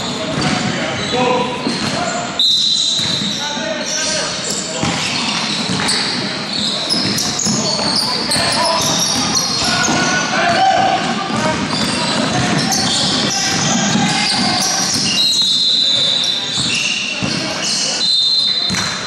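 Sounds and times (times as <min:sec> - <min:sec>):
players calling out: 0:00.0 - 0:19.0
sneakers squeaking: 0:00.0 - 0:19.0
basketball bouncing: 0:03.0 - 0:03.4, 0:06.9 - 0:10.2, 0:11.2 - 0:15.2, 0:18.7 - 0:19.0.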